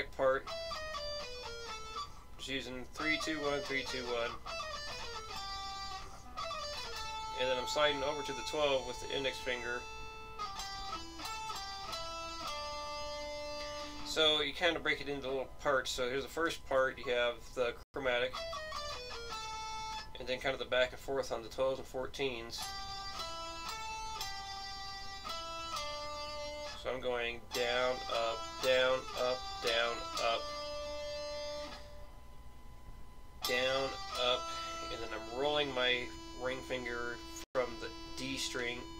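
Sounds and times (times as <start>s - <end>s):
electric guitar single notes: 0.0s - 16.1s, 18.1s - 20.5s, 22.5s - 38.9s.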